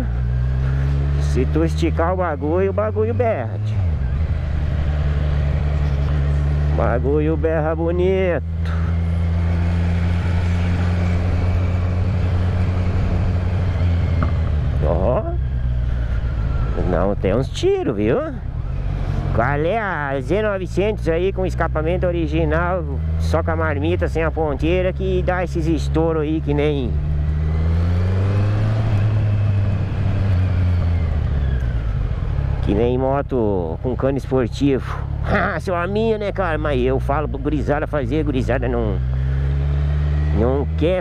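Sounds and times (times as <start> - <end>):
motorcycle engine running: 0.0 - 41.0.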